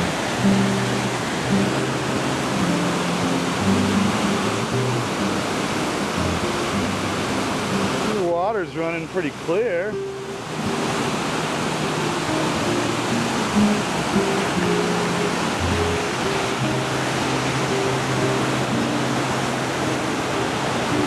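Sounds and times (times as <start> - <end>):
background music low notes: 0.0 - 21.0
river water rushing over rocks: 0.0 - 21.0.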